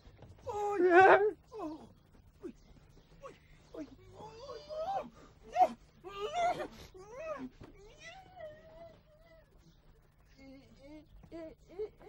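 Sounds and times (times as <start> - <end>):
faint whimper: 3.2 - 12.0.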